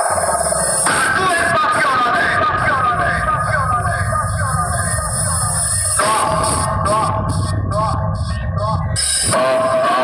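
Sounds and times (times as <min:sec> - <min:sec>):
heavy bass from speakers: 0:00.0 - 0:10.0
repeating vocal sample: 0:00.0 - 0:10.0
steady high test tone: 0:00.0 - 0:10.0.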